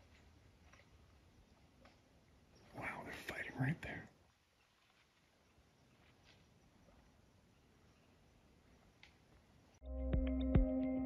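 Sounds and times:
low outdoor background: 0.0 - 11.0
person whispering: 2.7 - 4.2.

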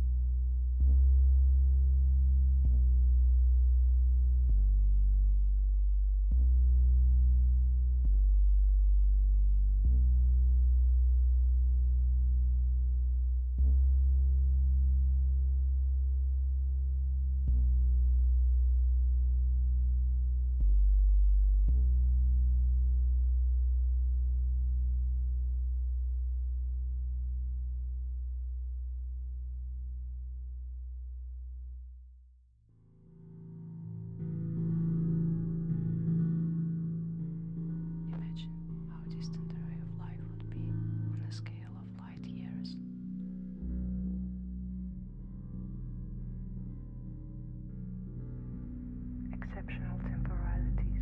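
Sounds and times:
low electronic drone: 33.0 - 51.0
person whispering: 38.1 - 42.8, 49.3 - 51.0.

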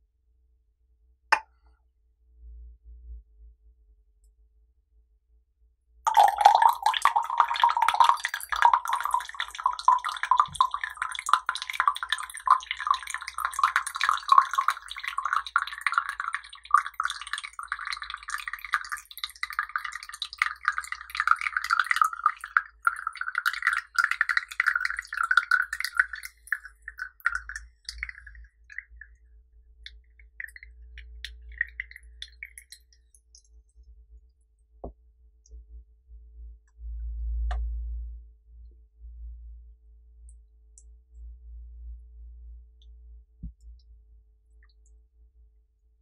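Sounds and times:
tea pouring into glass cup: 6.1 - 29.1, 29.9 - 33.0.

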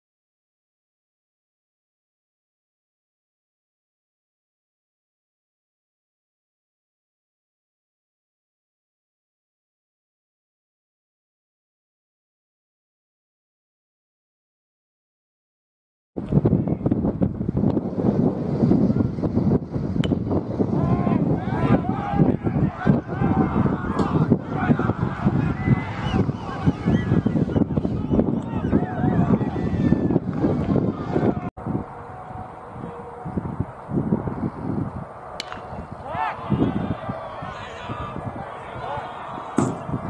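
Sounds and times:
wind buffeting microphone: 16.2 - 40.0
bat pinging a baseball: 35.4 - 35.8, 39.6 - 39.8
person shouting: 36.0 - 36.8.

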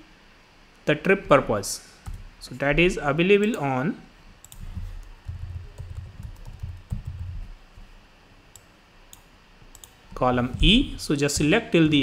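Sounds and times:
low desk thuds: 10.4 - 11.7.

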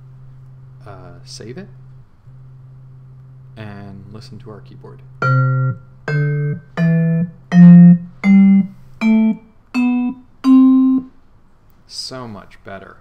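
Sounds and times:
vibraphone notes stepping upward: 5.2 - 11.1.

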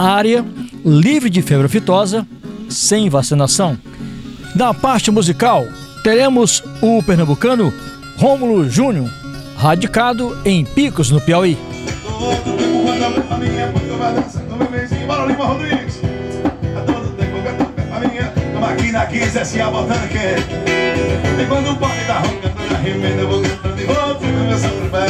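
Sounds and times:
man singing into a microphone: 0.0 - 0.9, 9.8 - 25.0
acoustic guitar strumming: 0.0 - 25.0.

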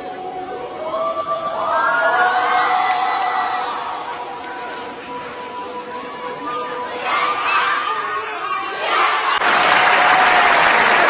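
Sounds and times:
steady applause: 2.4 - 6.4, 7.2 - 11.0
audience cheering and shouting: 6.3 - 11.0.

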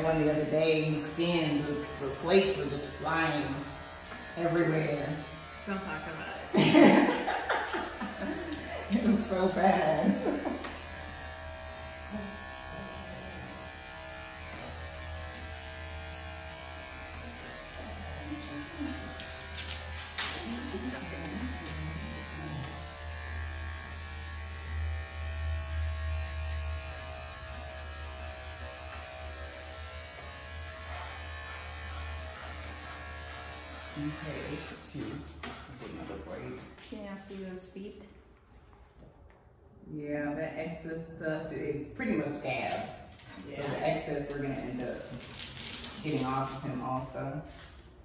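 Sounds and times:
electric clippers humming: 0.0 - 35.5, 41.9 - 47.2.

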